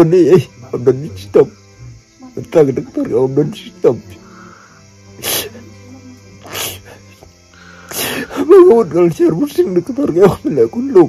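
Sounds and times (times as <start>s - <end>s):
soft background music: 0.0s - 11.0s
man breathing heavily: 6.5s - 8.4s.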